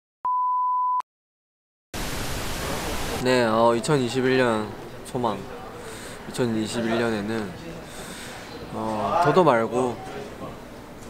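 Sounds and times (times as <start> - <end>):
tv static hiss: 2.0 - 3.5.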